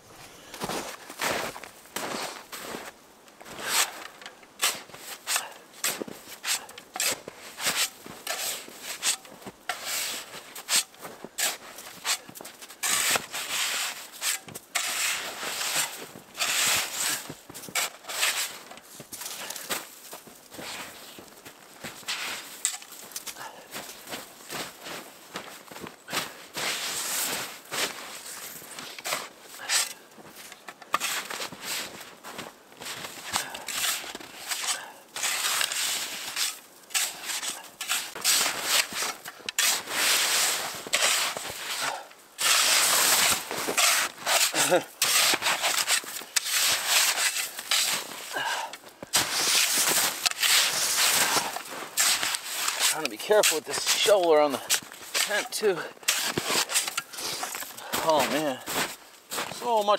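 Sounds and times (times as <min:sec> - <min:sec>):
snow shovel scraping snow: 0:00.2 - 0:59.9.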